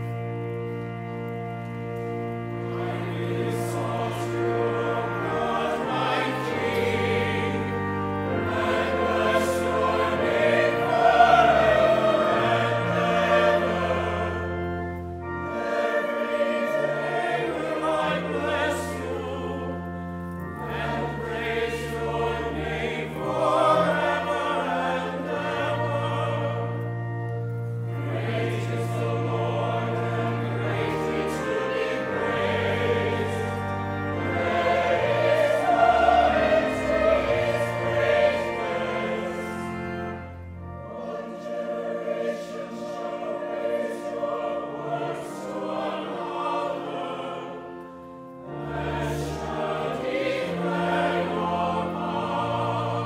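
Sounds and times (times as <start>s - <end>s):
church choir singing: 0.0s - 53.0s
low organ notes: 0.0s - 53.0s.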